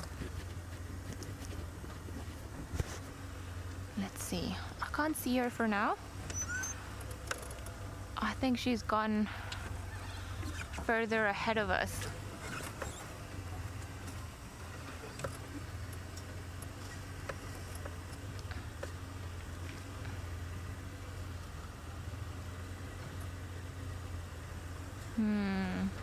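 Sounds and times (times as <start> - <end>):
vehicle engine idling: 0.0 - 26.0.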